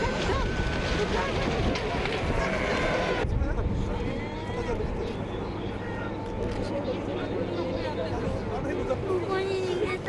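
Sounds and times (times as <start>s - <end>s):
low outdoor rumble: 0.0s - 10.0s
people talking: 0.0s - 10.0s.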